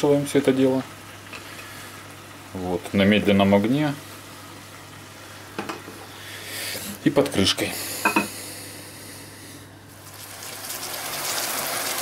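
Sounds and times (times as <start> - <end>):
food sizzling in a pan: 9.9 - 12.0.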